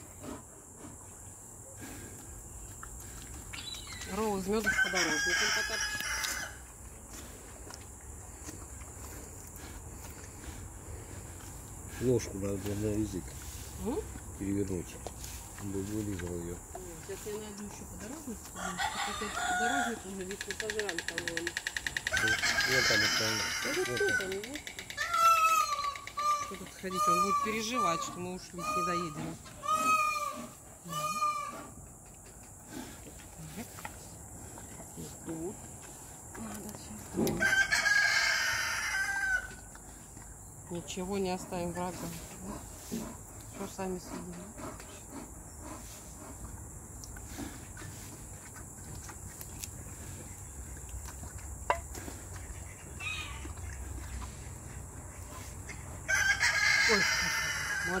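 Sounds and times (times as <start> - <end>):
rooster crowing: 4.6 - 6.6, 18.6 - 20.1, 22.1 - 24.4, 37.4 - 39.6, 56.0 - 58.0
pitched animal calls: 22.2 - 31.8.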